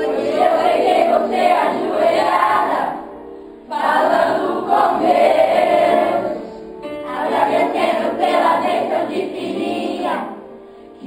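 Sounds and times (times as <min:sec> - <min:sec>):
children's choir singing: 0:00.0 - 0:10.5.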